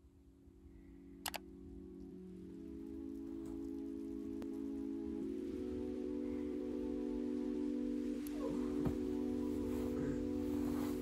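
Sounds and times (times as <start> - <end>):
quick clicks: 1.2 - 1.4
soft musical alarm chord: 1.4 - 11.0.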